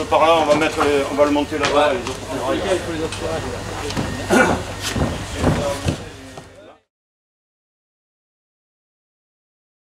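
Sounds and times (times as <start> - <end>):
sharp knocks: 3.9 - 6.5.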